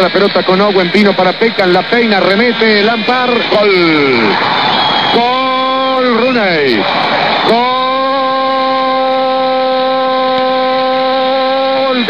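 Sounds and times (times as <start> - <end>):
commentator shouting goal call: 5.1 - 6.8, 7.4 - 12.0.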